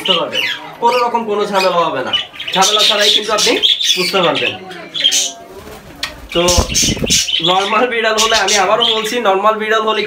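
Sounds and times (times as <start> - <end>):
parrots calling: 0.0 - 5.4, 6.0 - 9.2.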